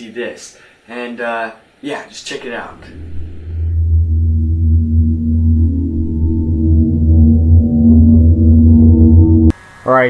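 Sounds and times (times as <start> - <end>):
deep steady drone: 2.1 - 9.5
sustained ringing tones: 2.1 - 9.5.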